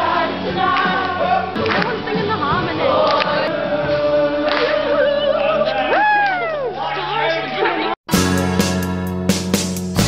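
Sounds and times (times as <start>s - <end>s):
group of voices singing: 0.0s - 6.0s.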